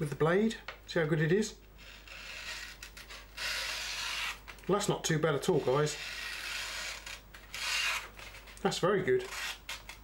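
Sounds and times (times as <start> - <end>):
knife blade slicing paper: 9.2 - 10.0.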